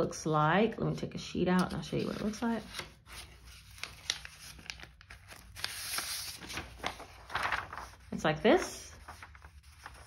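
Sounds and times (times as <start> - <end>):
plastic wrapping crinkling and tearing: 3.6 - 8.0.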